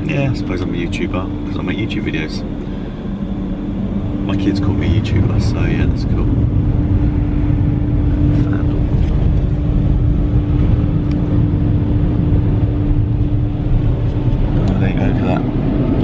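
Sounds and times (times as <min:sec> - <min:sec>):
car engine idling rumble: 0:00.0 - 0:16.0
steady hum: 0:00.0 - 0:16.0.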